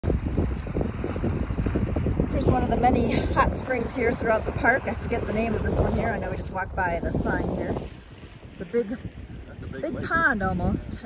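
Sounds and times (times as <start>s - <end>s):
water churning and bubbling: 0.0s - 11.0s
wind buffeting microphone: 0.0s - 11.0s.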